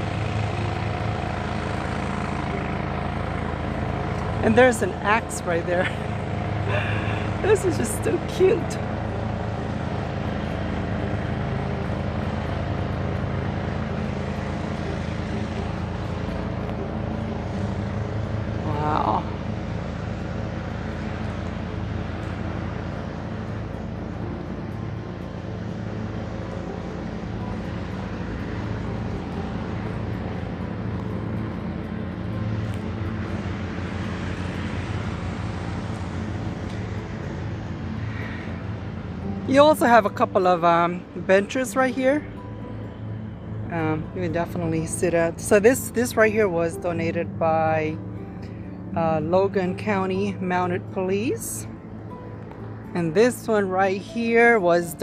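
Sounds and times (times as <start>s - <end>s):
low mechanical drone: 0.0s - 55.0s.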